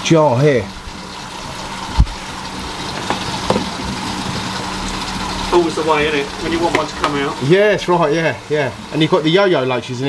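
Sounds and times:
aquarium pumps humming: 0:00.0 - 0:10.0.

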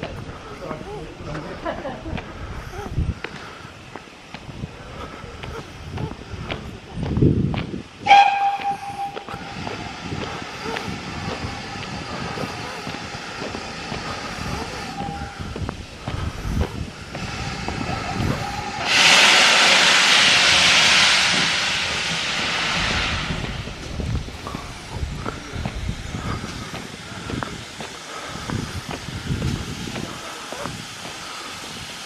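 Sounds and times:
hiss of escaping steam: 0:00.2 - 0:32.0
steam locomotive whistle: 0:08.0 - 0:09.8.

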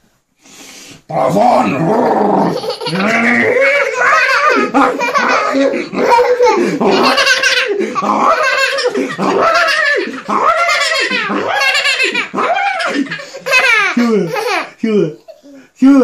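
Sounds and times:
small child laughing: 0:02.4 - 0:15.6.

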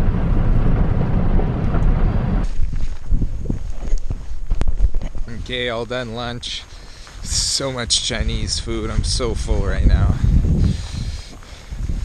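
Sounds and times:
vehicle low rumble: 0:00.0 - 0:12.0
wind buffeting microphone: 0:00.0 - 0:12.0.

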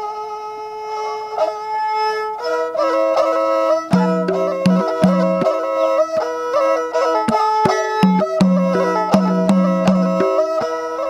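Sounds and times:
bowed fiddle long note: 0:00.0 - 0:11.0.

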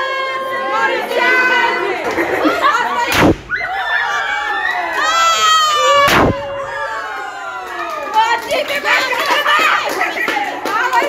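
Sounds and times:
people cheering and shouting: 0:00.0 - 0:11.0
confetti popper bang: 0:03.1 - 0:03.7, 0:06.0 - 0:06.7.

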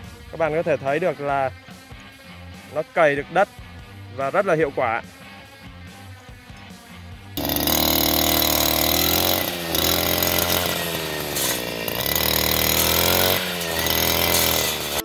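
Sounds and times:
brush cutter running: 0:07.4 - 0:15.0.

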